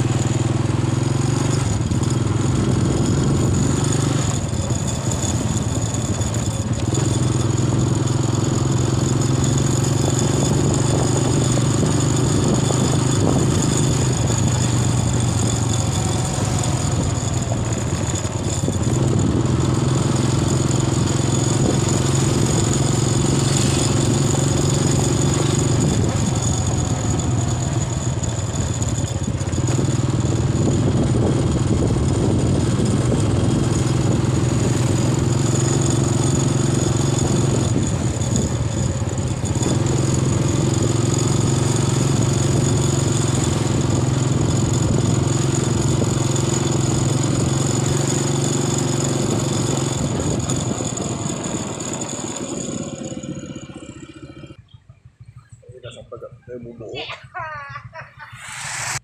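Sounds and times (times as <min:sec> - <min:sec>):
vehicle engine humming: 0:00.0 - 0:59.0.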